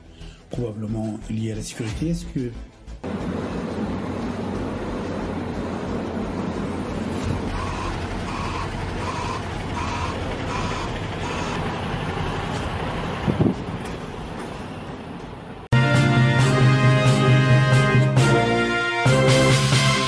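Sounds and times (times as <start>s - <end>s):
street traffic rumble: 3.0s - 15.7s
reversing beeper: 5.8s - 11.6s.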